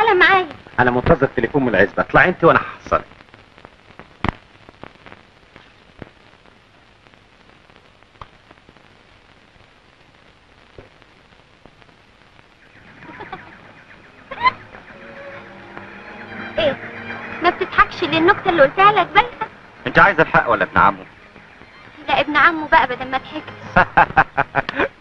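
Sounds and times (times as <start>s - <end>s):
film soundtrack hiss and crackle: 0.0s - 25.0s
music: 12.7s - 24.8s.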